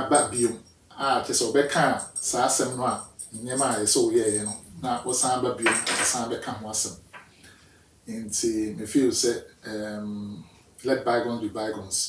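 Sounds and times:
man talking: 0:00.0 - 0:07.0, 0:08.1 - 0:12.0.

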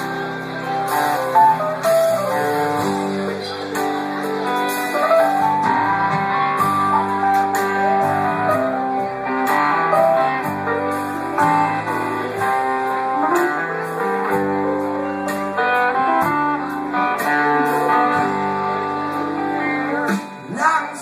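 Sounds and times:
bass notes: 0:00.0 - 0:20.2
electric guitar: 0:00.0 - 0:21.0
keyboard: 0:00.0 - 0:21.0.

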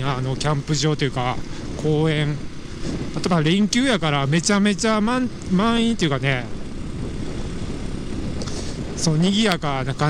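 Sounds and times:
motorcycle engine running: 0:00.0 - 0:10.0
road noise: 0:00.0 - 0:10.0
wind noise: 0:00.0 - 0:10.0.

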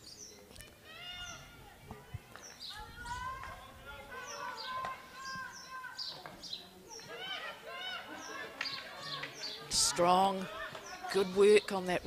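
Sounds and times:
small birds chirping: 0:00.0 - 0:12.0
players calling out: 0:00.8 - 0:12.0.

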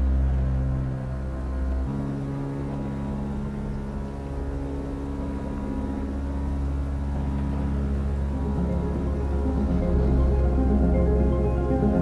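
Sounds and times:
deep continuous rumble: 0:00.0 - 0:12.0
eerie ambient music: 0:00.0 - 0:12.0.

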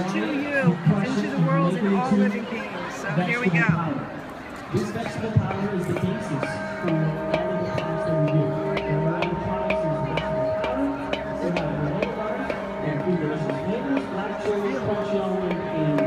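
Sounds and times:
singing bowl struck with mallet: 0:06.4 - 0:16.0.

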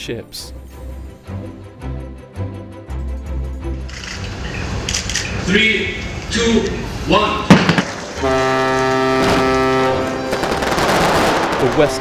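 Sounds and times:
fireworks crackling: 0:07.5 - 0:12.0
steady horn-like tone: 0:08.1 - 0:10.5.

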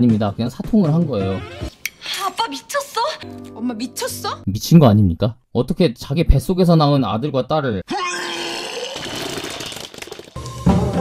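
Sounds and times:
man retching and vomiting: 0:07.9 - 0:10.4.

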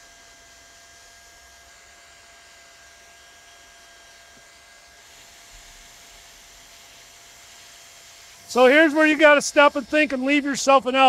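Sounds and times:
hot-air welding gun hissing: 0:04.3 - 0:11.0.

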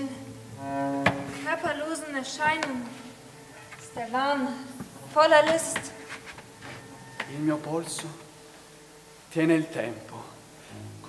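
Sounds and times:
bowed cello and double bass: 0:00.0 - 0:04.2, 0:10.0 - 0:11.0.

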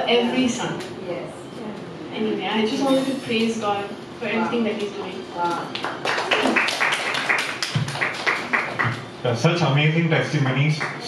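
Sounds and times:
people clapping in rhythm: 0:05.7 - 0:09.1, 0:10.3 - 0:11.0.

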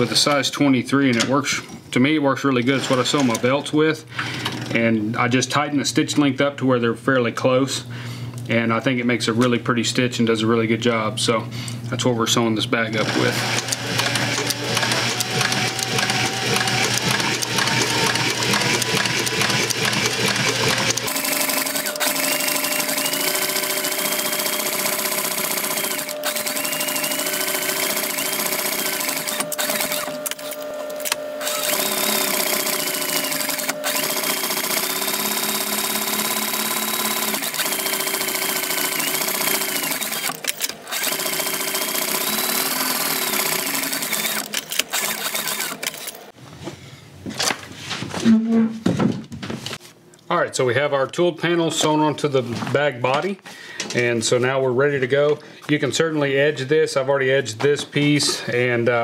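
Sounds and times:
sewing machine stitching leather: 0:02.6 - 0:03.6, 0:13.0 - 0:46.4.

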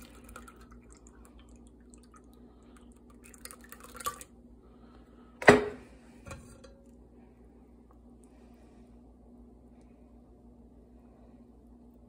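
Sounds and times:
slimy liquid dripping through strainer: 0:00.0 - 0:04.4.

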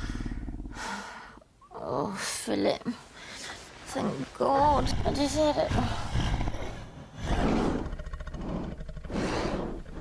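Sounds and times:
creature's breathy roars: 0:00.0 - 0:01.2, 0:04.8 - 0:10.0.

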